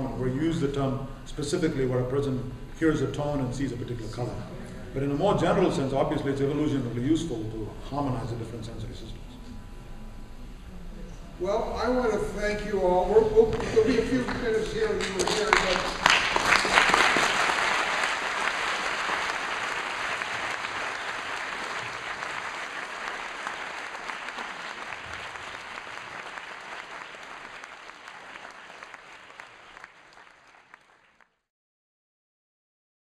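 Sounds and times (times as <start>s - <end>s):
audience applauding: 13.5s - 31.4s.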